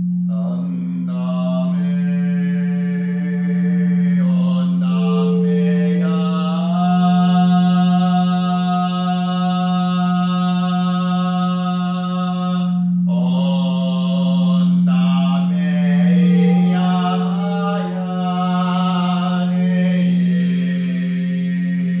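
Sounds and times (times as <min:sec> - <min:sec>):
singing bowls drone: 0:00.0 - 0:22.0
man chanting a held note: 0:00.3 - 0:22.0.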